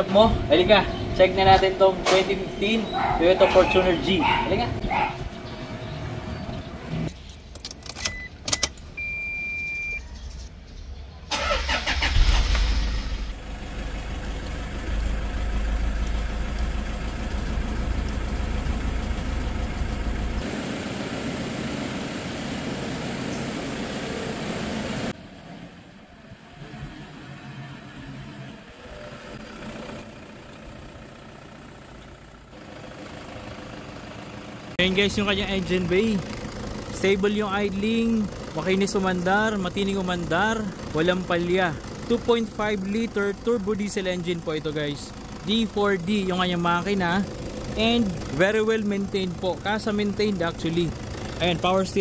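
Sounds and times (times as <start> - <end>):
diesel engine cranking and idling: 0.0 - 10.0, 11.3 - 52.0
short beep: 8.0 - 10.1.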